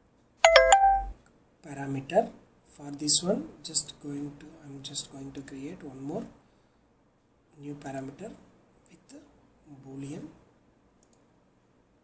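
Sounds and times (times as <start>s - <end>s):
short bell-like chime: 0.4s - 1.1s.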